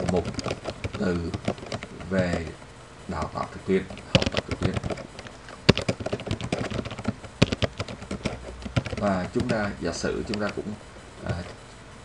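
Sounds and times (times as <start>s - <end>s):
computer keyboard typing: 0.0s - 11.6s.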